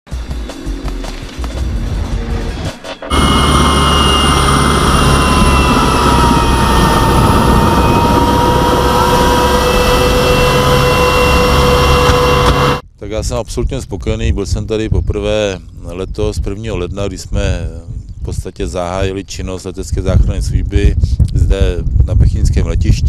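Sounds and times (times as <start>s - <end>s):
helicopter rotor and turbine noise: 0.2s - 12.8s
high steady whining tones: 0.3s - 12.8s.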